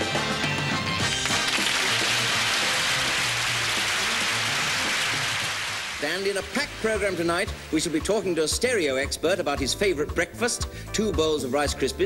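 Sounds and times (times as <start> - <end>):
audience applauding: 1.0 - 7.1.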